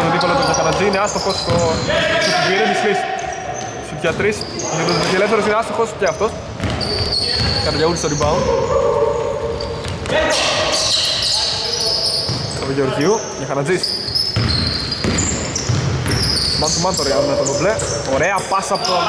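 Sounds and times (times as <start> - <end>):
sneakers squeaking: 0.0 - 19.0
voices echoing in hall: 0.0 - 19.0.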